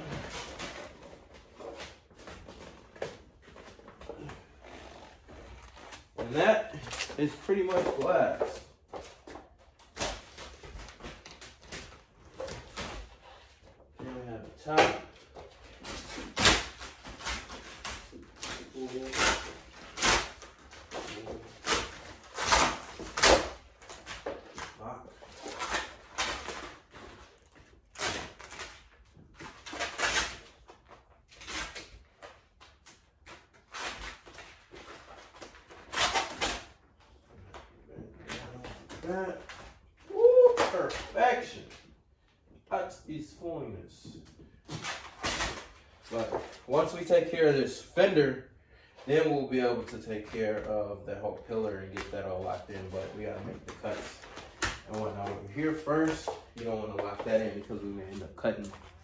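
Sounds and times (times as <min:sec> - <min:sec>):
plastic film crackling: 0:05.4 - 0:13.1, 0:15.6 - 0:36.8.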